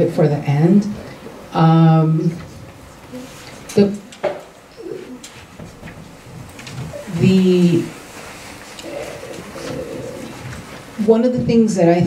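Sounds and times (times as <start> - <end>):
faint low murmur: 0.0 - 12.0
paper rustling: 5.0 - 11.1.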